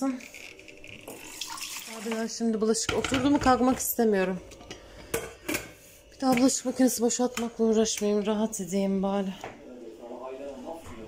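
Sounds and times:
tap water filling a jug: 0:00.7 - 0:02.3.

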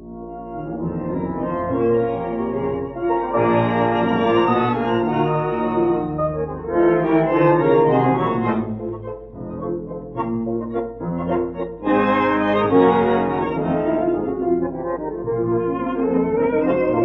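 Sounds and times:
piano: 0:00.0 - 0:17.0
orchestra playing a waltz: 0:00.1 - 0:17.0.

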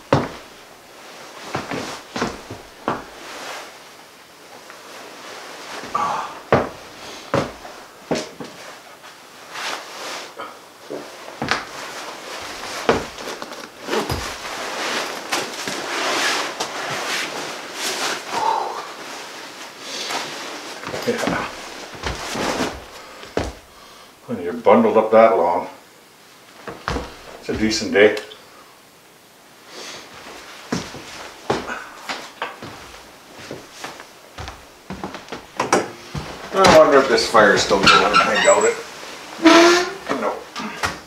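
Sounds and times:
nylon parka rustling: 0:00.0 - 0:23.8, 0:26.2 - 0:28.1, 0:29.4 - 0:40.6.

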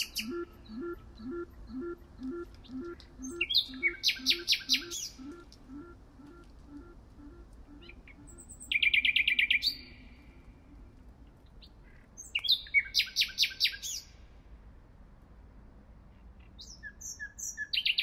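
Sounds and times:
nightingale singing: 0:00.0 - 0:10.8, 0:11.5 - 0:14.1, 0:16.4 - 0:18.0.

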